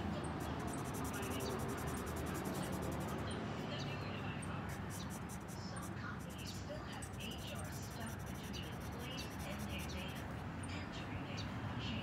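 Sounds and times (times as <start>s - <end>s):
marker rubbing on paper: 0.0s - 3.4s, 4.5s - 10.3s.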